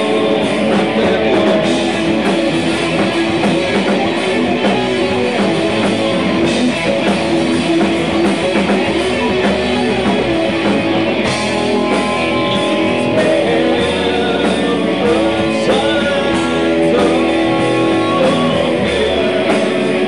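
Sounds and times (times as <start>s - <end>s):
bass guitar: 0.0s - 20.0s
drums: 0.0s - 20.0s
electric guitar: 0.0s - 20.0s.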